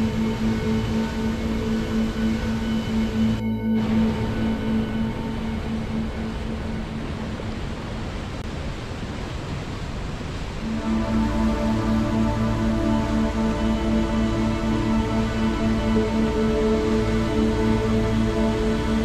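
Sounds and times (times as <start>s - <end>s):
slow ambient music: 0.0s - 8.4s, 10.4s - 19.0s.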